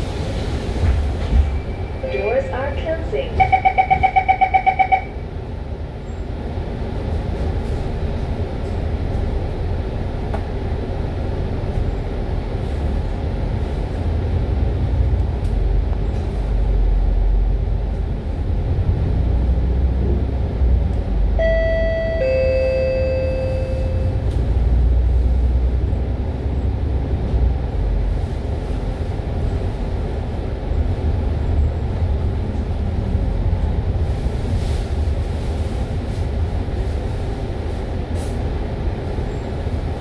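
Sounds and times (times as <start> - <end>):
bus engine rumbling: 0.0 - 40.0
rapid warning beeps: 3.3 - 5.1.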